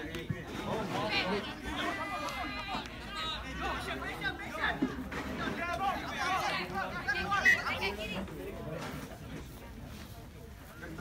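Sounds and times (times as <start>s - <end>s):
spectators chattering: 0.0s - 11.0s.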